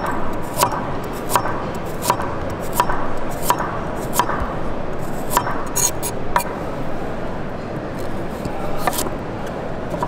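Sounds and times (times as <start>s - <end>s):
background noise: 0.0s - 10.0s.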